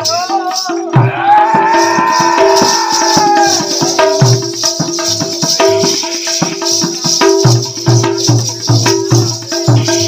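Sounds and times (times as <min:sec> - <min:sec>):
drum strokes: 0:00.0 - 0:10.0
jingling rattle percussion: 0:00.0 - 0:10.0.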